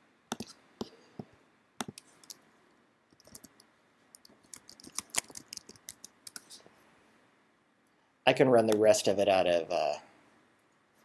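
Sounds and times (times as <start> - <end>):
computer keyboard typing: 3.2 - 6.6.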